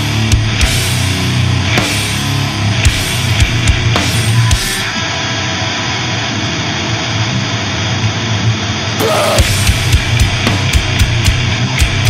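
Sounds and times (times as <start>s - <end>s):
distorted noise roar: 0.0s - 12.0s.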